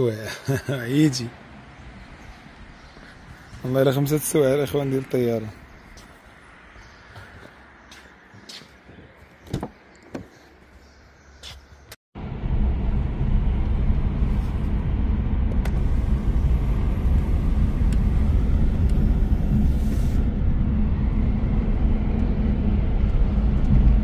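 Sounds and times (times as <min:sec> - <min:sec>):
road and wind noise in car: 0:00.0 - 0:10.3, 0:12.2 - 0:24.0.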